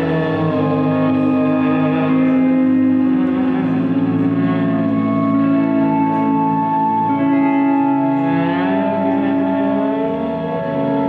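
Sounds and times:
amplified violin drone: 0.0s - 11.0s.

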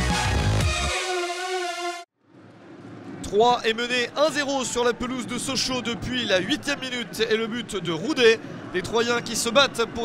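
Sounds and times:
faint stadium crowd: 2.2s - 10.0s.

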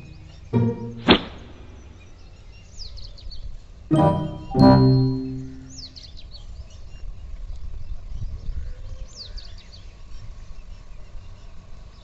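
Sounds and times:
bird singing high chirps: 0.0s - 3.0s.

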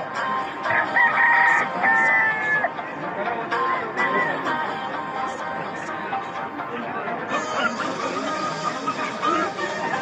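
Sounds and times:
rooster crowing: 0.7s - 2.7s.

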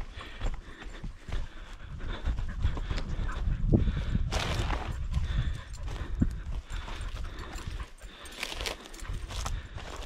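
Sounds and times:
footsteps in dry grass and brush: 0.0s - 10.0s.

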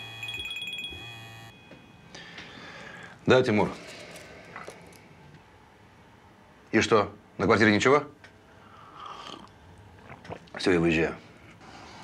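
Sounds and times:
phone ringtone trilling: 0.0s - 2.0s.

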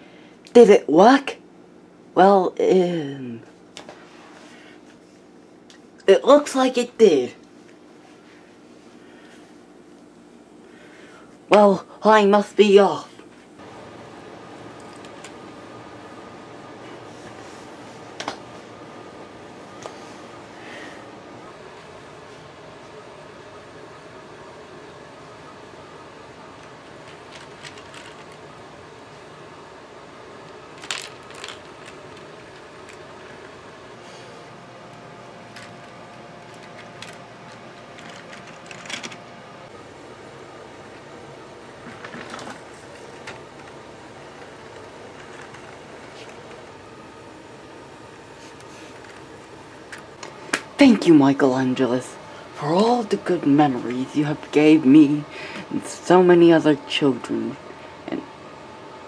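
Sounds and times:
steady background hiss: 0.0s - 59.0s
wheels rolling on plastic track: 26.8s - 28.5s, 30.7s - 33.5s, 35.5s - 39.2s, 44.4s - 46.4s
toy train motor running: 30.8s - 33.5s.

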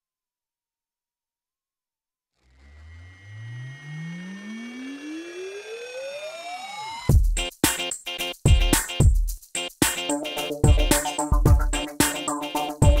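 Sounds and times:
synthesized rising sweep: 2.8s - 7.1s
tones gliding downward: 3.0s - 7.1s.

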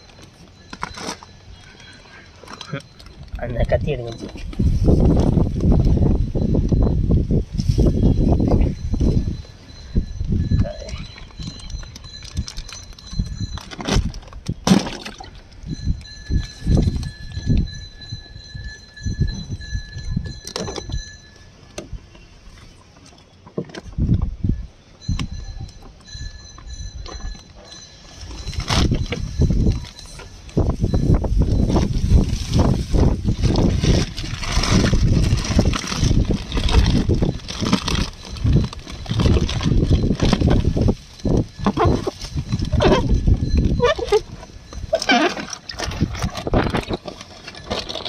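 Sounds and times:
plastic bags crinkling: 0.0s - 6.2s, 10.5s - 17.4s, 27.4s - 48.0s
handling noise on microphone: 0.0s - 24.4s, 25.0s - 48.0s.

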